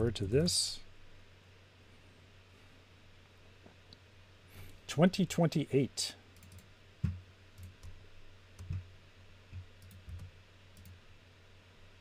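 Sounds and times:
faint low hum: 0:00.0 - 0:12.0
keyboard and mouse clicks: 0:06.4 - 0:08.0, 0:08.6 - 0:08.8, 0:09.5 - 0:11.0.

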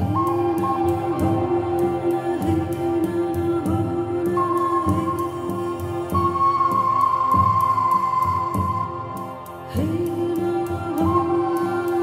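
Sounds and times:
flute holding long note: 0:00.0 - 0:12.0
soft steady beat: 0:00.0 - 0:12.0.

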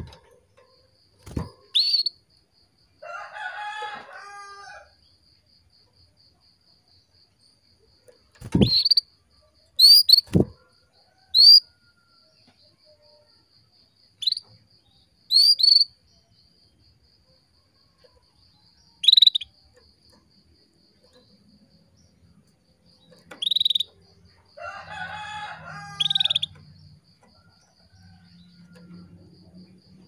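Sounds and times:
canary chirps: 0:00.0 - 0:02.3, 0:08.2 - 0:10.6, 0:11.3 - 0:11.8, 0:14.1 - 0:16.4, 0:18.0 - 0:20.2, 0:20.9 - 0:28.9.

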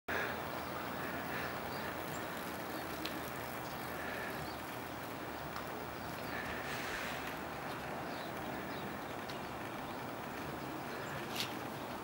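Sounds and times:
outdoor background noise: 0:00.1 - 0:12.0.

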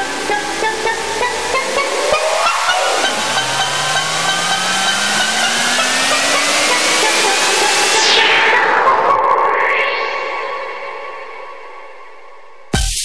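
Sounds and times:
hissing noise riser: 0:00.0 - 0:08.8
electronic dance music: 0:00.0 - 0:10.7, 0:12.8 - 0:13.0
rising electronic tones: 0:00.0 - 0:11.1.

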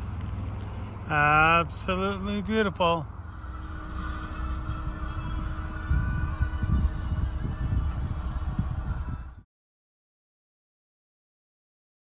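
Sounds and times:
faint steady hum: 0:00.0 - 0:09.4
wind buffeting microphone: 0:03.4 - 0:09.4.

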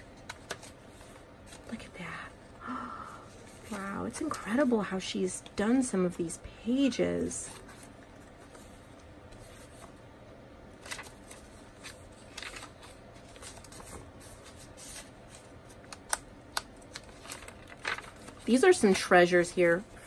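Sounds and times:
paper pages rustling: 0:00.0 - 0:01.8, 0:07.4 - 0:10.0, 0:10.8 - 0:20.0.

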